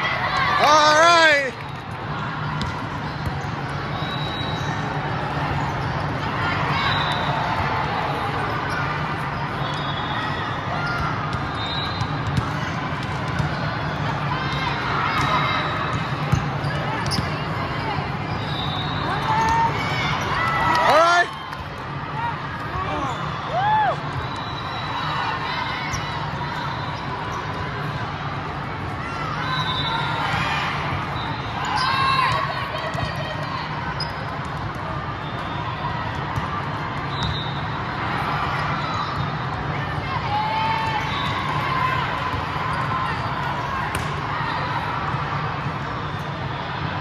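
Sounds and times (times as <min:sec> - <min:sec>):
court shoes squeaking: 0:00.6 - 0:21.3, 0:25.7 - 0:28.0, 0:28.9 - 0:39.8, 0:40.5 - 0:44.8
volleyball hits: 0:02.5 - 0:03.4, 0:43.8 - 0:44.3.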